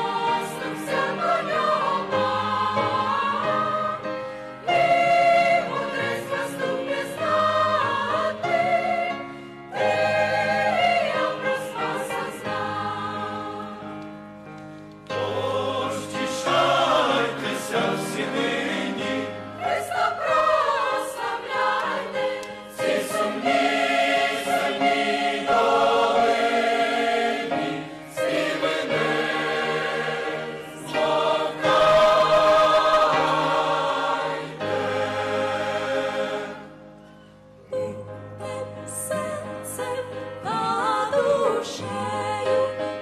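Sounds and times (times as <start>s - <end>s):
mixed choir singing in harmony: 0.0s - 14.5s, 15.1s - 37.0s, 37.7s - 43.0s.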